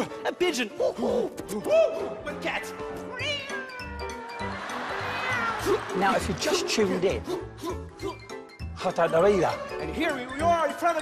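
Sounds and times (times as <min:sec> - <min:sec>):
backing music: 0:00.0 - 0:11.0
cat meow falling in pitch: 0:05.0 - 0:05.7.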